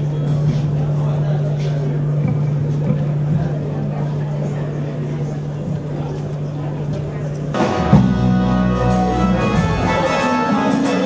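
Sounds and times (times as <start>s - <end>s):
steady low hum: 0.0s - 10.2s
murmur of crowd voices: 0.0s - 11.0s.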